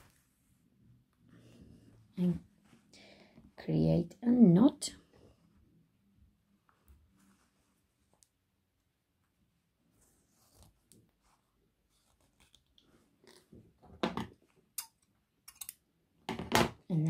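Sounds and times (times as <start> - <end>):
fabric rustling: 6.6 - 8.5, 9.2 - 13.7.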